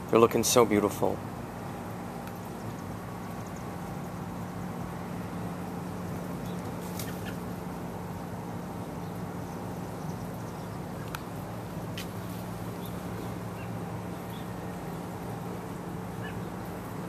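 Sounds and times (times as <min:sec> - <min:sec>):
low background hum: 0:00.0 - 0:17.0.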